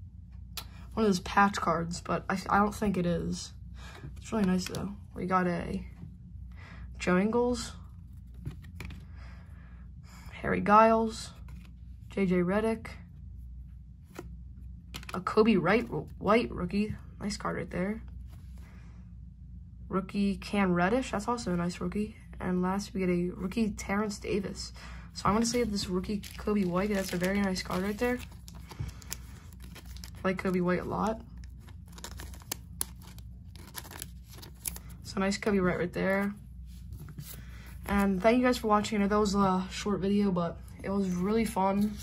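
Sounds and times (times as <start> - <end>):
faint low hum: 0.0 - 42.0
trading cards flipped by hand: 4.2 - 4.9, 8.2 - 9.0, 14.0 - 15.2, 25.3 - 30.6, 31.4 - 35.0.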